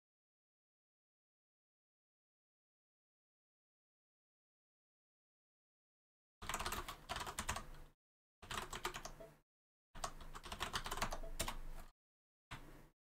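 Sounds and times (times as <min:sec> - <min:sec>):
computer keyboard typing: 0:06.4 - 0:09.3, 0:10.0 - 0:11.8.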